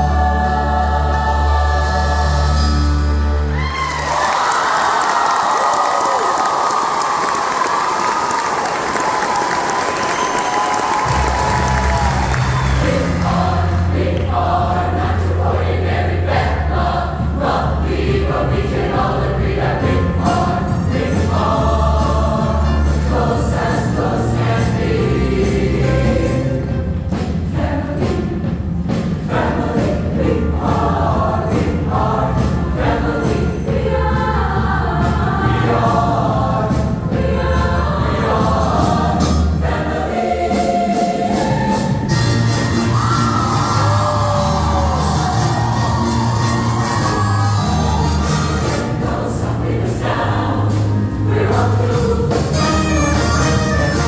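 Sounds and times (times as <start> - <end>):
choir singing: 0.0 - 4.6, 7.6 - 54.0.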